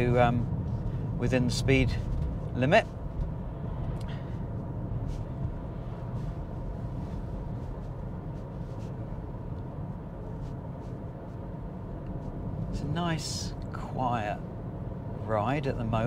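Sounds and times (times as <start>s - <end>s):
road and tyre rumble in car: 0.0s - 16.0s.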